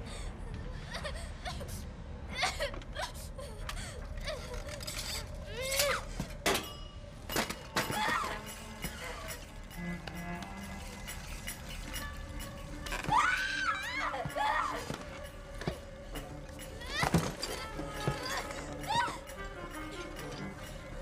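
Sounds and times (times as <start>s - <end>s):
girl crying and sobbing: 0.0s - 6.2s, 12.9s - 15.2s, 16.7s - 20.0s.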